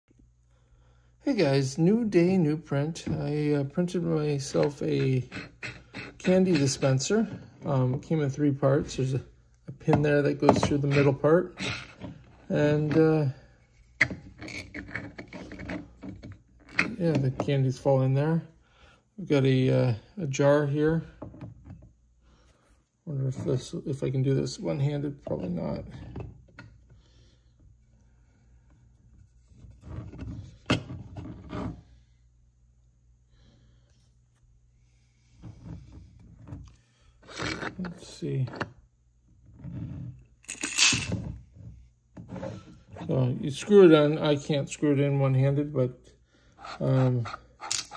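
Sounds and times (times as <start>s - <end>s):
plastic parts knocking and scraping: 4.4s - 8.2s, 9.7s - 13.2s, 14.0s - 17.6s, 35.4s - 38.8s
plastic scraping on glass jar: 4.5s - 7.8s, 10.4s - 12.6s, 37.2s - 38.0s, 40.0s - 41.3s.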